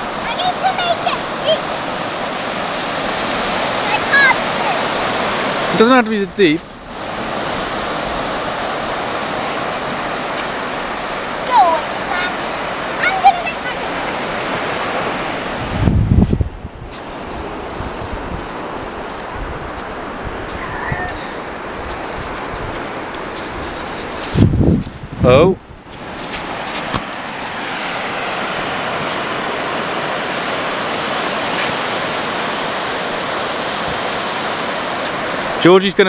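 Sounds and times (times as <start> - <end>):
surf washing: 0.0 - 36.0
children calling: 3.6 - 5.0, 11.4 - 14.3, 20.5 - 21.4
wind rumble on microphone: 6.7 - 35.6.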